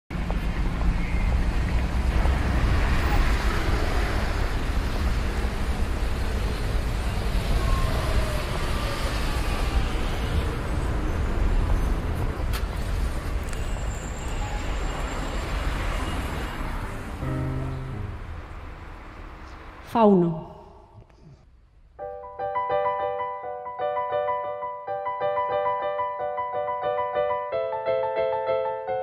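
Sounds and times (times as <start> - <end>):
street traffic rumble: 0.1 - 20.0.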